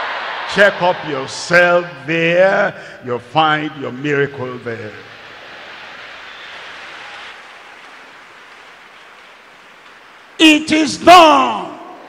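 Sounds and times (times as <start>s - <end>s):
crowd murmuring and praying: 0.2s - 7.0s.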